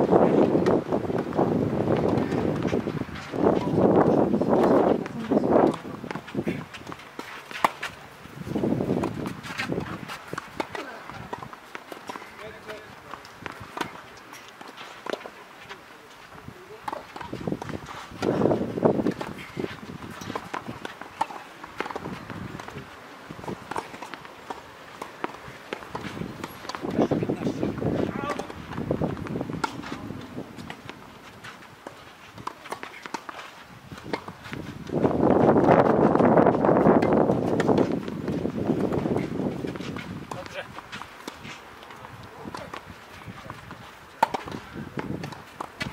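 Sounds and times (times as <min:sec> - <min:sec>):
footsteps on clay: 0:00.0 - 0:45.9
racket hitting tennis ball: 0:00.3 - 0:15.8, 0:16.8 - 0:45.9.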